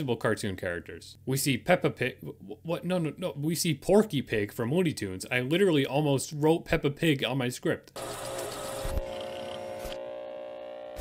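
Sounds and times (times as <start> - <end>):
electronic glitch hum: 8.6 - 11.0.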